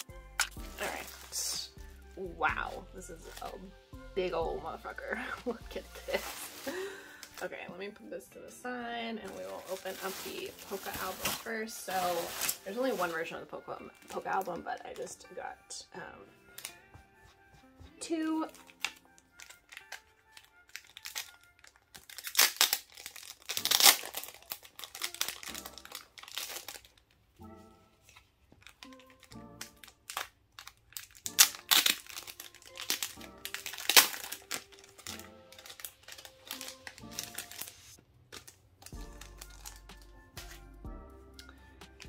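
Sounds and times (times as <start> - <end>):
plastic sleeves crinkling and tearing: 0.0 - 1.7, 4.9 - 7.7, 9.2 - 15.2, 16.5 - 16.9, 18.4 - 40.6
soft background music: 0.0 - 42.0.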